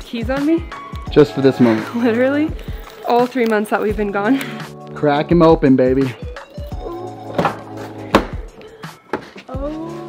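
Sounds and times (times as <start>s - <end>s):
background music: 0.0s - 10.0s
van door clunking open: 7.2s - 8.5s.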